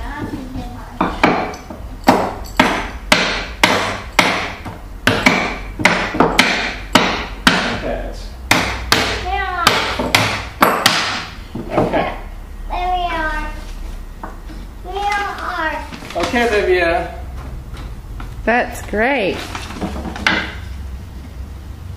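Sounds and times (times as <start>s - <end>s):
hammers driving nails into wood: 1.2s - 7.8s, 8.5s - 11.9s.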